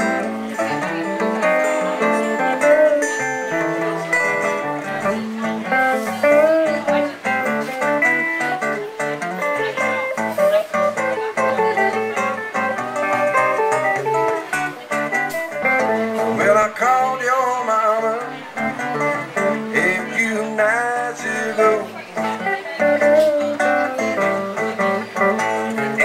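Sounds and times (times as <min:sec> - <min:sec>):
electric blues guitar lead: 0:00.0 - 0:26.0
strummed acoustic guitar: 0:00.0 - 0:26.0.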